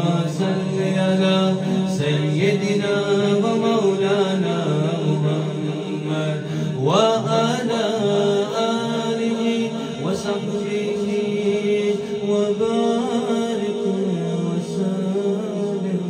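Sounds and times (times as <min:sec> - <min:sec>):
man singing into a microphone: 0:00.0 - 0:16.0.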